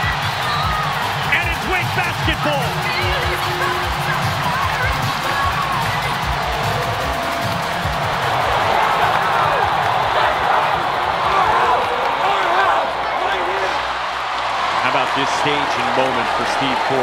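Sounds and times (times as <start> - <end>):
music with bass pulse: 0.0 - 11.0
arena crowd cheering and shouting: 0.0 - 17.0.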